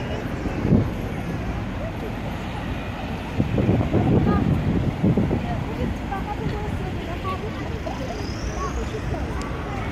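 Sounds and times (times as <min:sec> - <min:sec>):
road traffic noise: 0:00.0 - 0:09.9.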